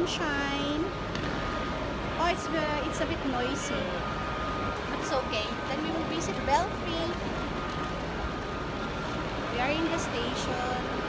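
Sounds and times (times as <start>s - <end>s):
busy railway station noise: 0.0s - 11.0s.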